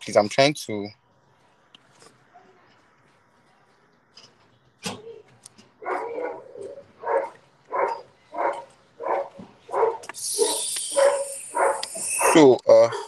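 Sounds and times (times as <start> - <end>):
dog barking: 5.8 - 13.0.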